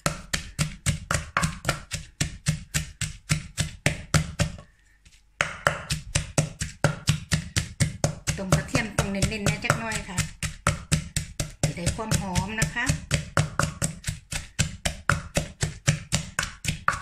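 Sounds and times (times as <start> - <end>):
wooden pestle pounding in mortar: 0.0 - 4.7, 5.4 - 17.0.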